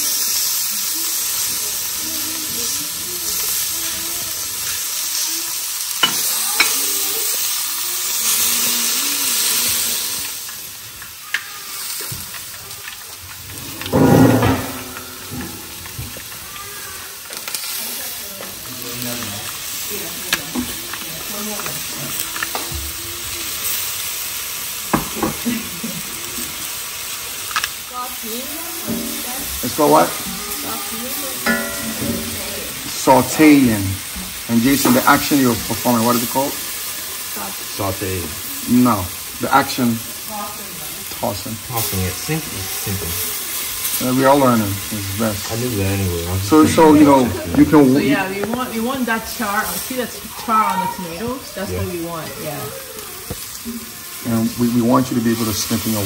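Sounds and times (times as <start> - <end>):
vegetables sizzling in a skillet: 0.0 - 56.0.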